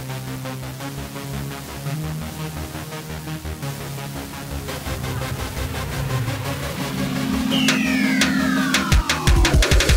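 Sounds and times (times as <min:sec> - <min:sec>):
electronic music with steady beat: 0:00.0 - 0:09.9.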